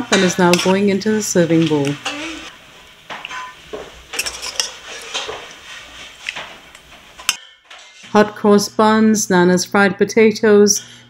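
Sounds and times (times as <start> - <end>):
metal spoon clinking on pot and dish: 4.1 - 5.3.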